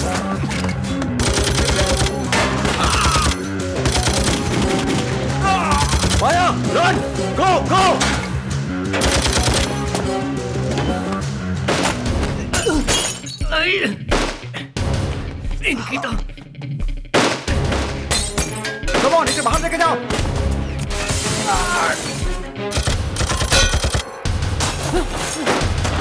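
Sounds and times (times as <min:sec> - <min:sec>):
loud action music: 0:00.0 - 0:12.9, 0:13.5 - 0:26.0
submachine gun fire: 0:01.2 - 0:02.1, 0:09.0 - 0:09.6.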